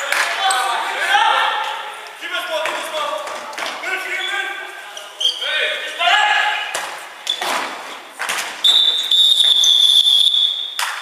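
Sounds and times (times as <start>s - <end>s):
long high-pitched whistle blast: 8.6s - 10.8s.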